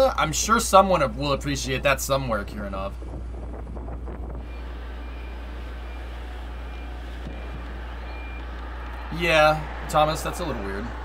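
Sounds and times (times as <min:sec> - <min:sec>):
low rumble of worksite noise: 0:00.0 - 0:11.0
faint vehicle backup alarm beeping: 0:04.4 - 0:09.3.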